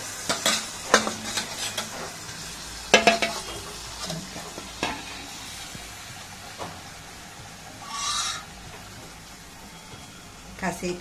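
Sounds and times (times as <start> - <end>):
curry frying hiss: 0.0 - 11.0
ladle clinking on metal pot: 2.9 - 4.2.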